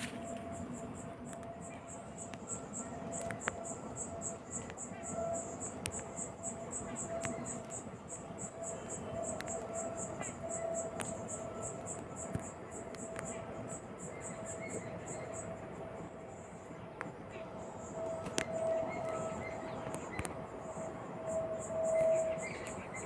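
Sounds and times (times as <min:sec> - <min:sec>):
insect chirping: 0:00.0 - 0:23.0
faint clicks: 0:04.5 - 0:06.3, 0:09.3 - 0:11.2, 0:19.8 - 0:20.4.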